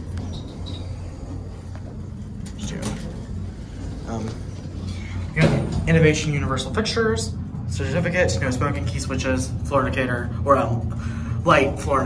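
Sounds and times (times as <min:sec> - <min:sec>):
elevator hum: 0:00.0 - 0:12.0.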